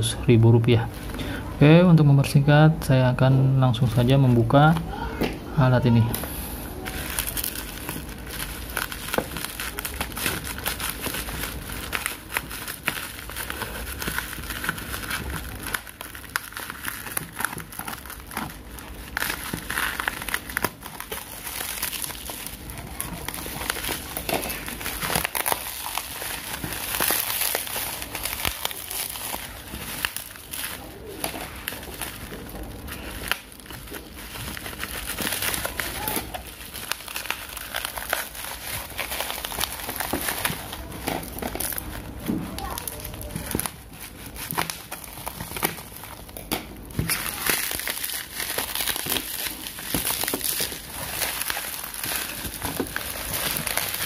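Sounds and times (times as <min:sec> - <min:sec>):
bubble wrap crinkling: 0:00.0 - 0:54.0
scissors cutting bubble wrap: 0:06.0 - 0:54.0.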